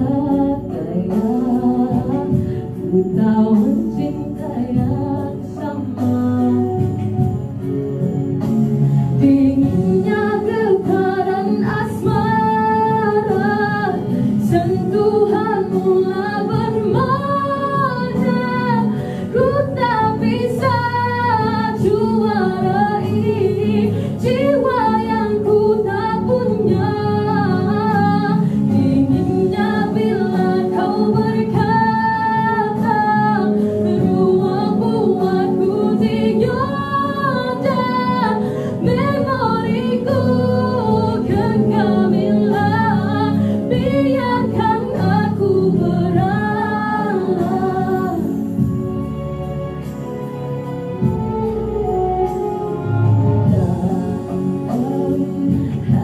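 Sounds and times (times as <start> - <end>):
woman singing into microphone: 0.0 - 7.6, 9.1 - 49.4, 51.0 - 56.0.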